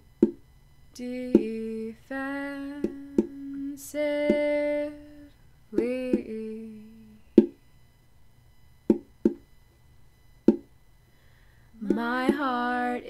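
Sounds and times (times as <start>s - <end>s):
faint microphone whine: 0.0s - 13.0s
person humming: 1.0s - 7.6s, 11.8s - 13.0s.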